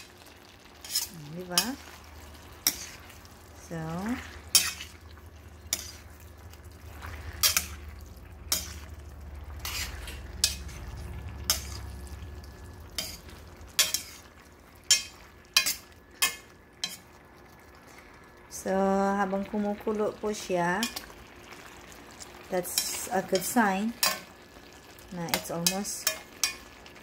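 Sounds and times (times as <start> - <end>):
soft sizzle of simmering sauce: 0.0 - 27.0
metal tongs clinking against pan: 0.8 - 1.8, 4.5 - 4.9, 7.4 - 7.8, 8.5 - 8.9, 9.6 - 10.8, 11.4 - 11.8, 13.0 - 14.1, 14.9 - 17.0, 22.7 - 24.3, 25.3 - 26.7.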